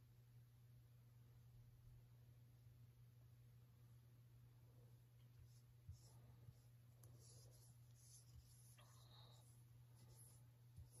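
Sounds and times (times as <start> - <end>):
low steady hum: 0.0 - 11.0
foam brush strokes on wood: 5.4 - 11.0.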